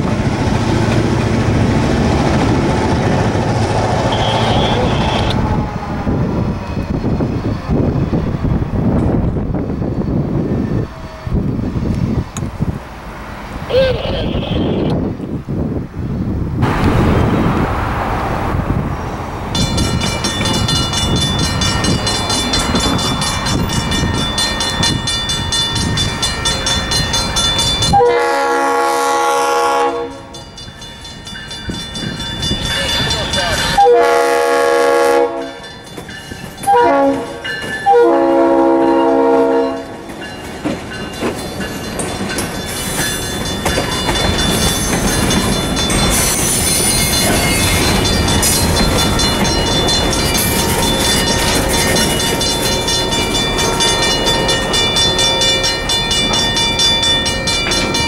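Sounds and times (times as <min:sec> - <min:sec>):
train wheels rattling on rails: 0:00.0 - 0:13.7, 0:15.0 - 0:34.6, 0:35.3 - 0:58.0
locomotive air horn: 0:04.0 - 0:05.5, 0:27.9 - 0:30.4, 0:33.8 - 0:35.6, 0:36.7 - 0:39.9.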